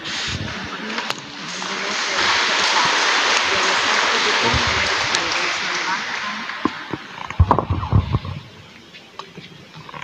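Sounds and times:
audience applauding: 0:01.6 - 0:07.5.

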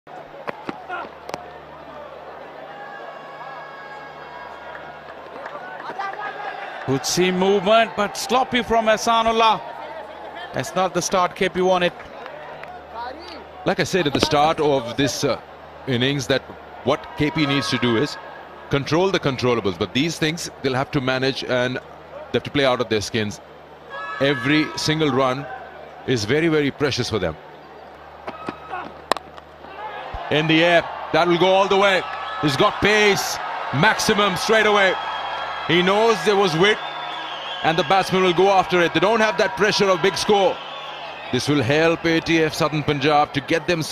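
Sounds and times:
bat hitting ball: 0:28.2 - 0:29.5.

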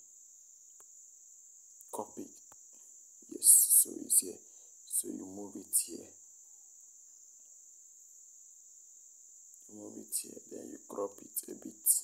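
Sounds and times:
high-pitched whine or hiss: 0:00.0 - 0:12.0
man's voice low and indistinct: 0:02.0 - 0:02.4, 0:03.2 - 0:06.1, 0:09.7 - 0:12.0.

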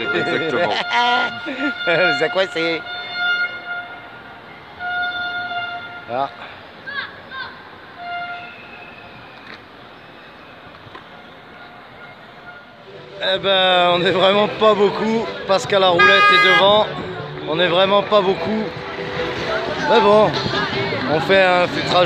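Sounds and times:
horn blasts: 0:00.0 - 0:06.4, 0:08.0 - 0:09.1, 0:11.4 - 0:12.9, 0:15.9 - 0:17.0.

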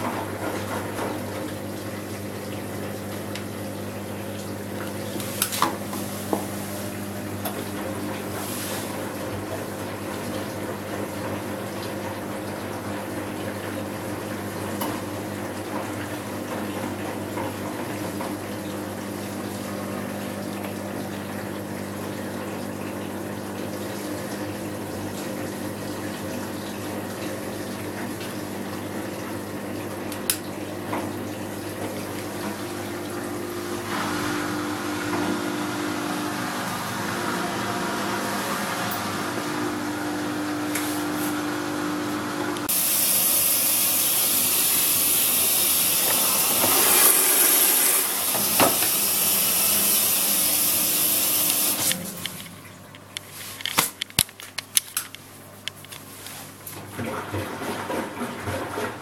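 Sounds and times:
washing machine motor hum: 0:00.0 - 0:53.6, 0:55.2 - 0:59.0
washing machine drum tumbling laundry: 0:56.5 - 0:59.0.

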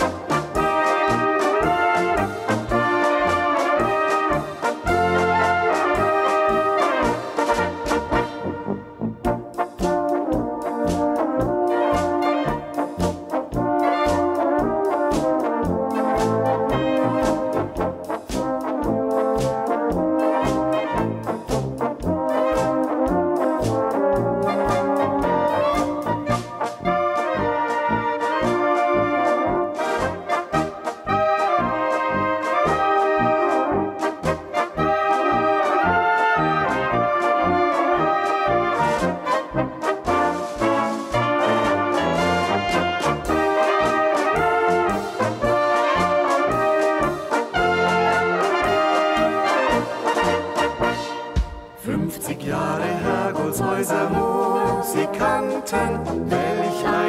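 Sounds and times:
brass band playing: 0:00.0 - 0:57.0
drum kit steady beat: 0:09.3 - 0:26.7, 0:48.9 - 0:52.1.

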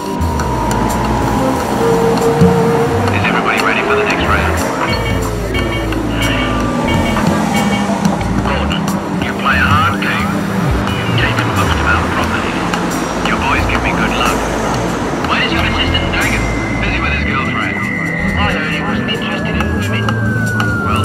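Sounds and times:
city traffic: 0:00.0 - 0:21.0
indistinct voices of passers-by: 0:00.0 - 0:21.0
passing vehicle engine: 0:00.0 - 0:21.0.

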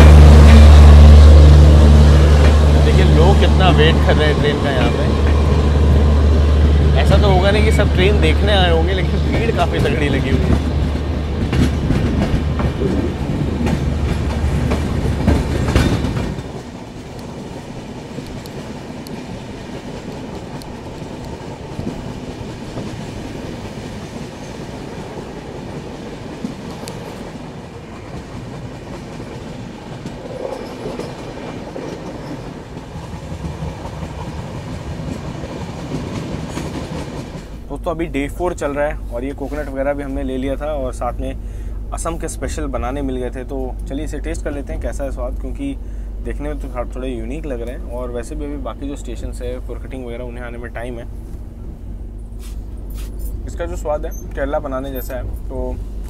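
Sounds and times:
train coaches rumbling on track: 0:00.0 - 0:56.0
voices: 0:02.8 - 0:05.6, 0:06.7 - 0:10.6.

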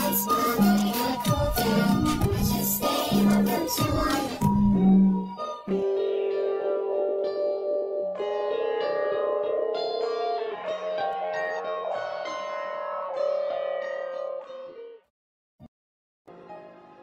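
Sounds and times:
plucked-string melody: 0:04.4 - 0:12.4.

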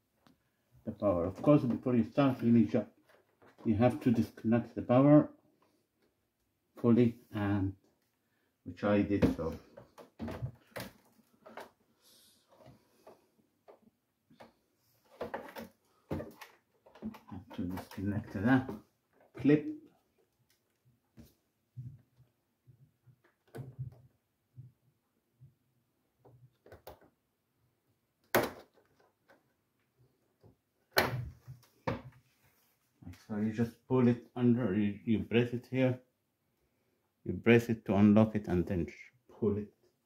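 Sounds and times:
plastic clatter: 0:12.5 - 0:19.5, 0:28.2 - 0:29.6
sharp plastic knocks: 0:28.2 - 0:29.1.

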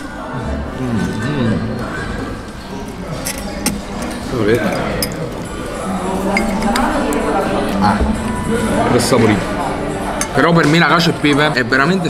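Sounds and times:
murmur of diners' voices: 0:00.0 - 0:12.0
cutlery clinking against plates: 0:02.9 - 0:05.5, 0:06.2 - 0:07.2, 0:10.1 - 0:10.9.

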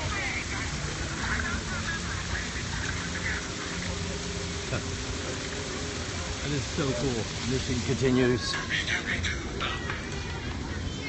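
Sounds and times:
waterfall splashing into pond: 0:00.0 - 0:11.0.

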